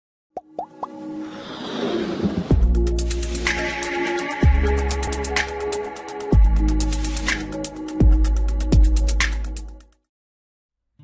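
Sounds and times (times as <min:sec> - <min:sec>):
rising plop-like blips: 0:00.4 - 0:01.0
intro music: 0:02.4 - 0:09.8.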